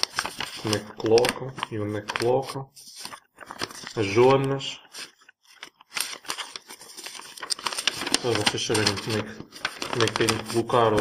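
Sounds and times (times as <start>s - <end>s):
paper rustling: 0.0s - 11.0s.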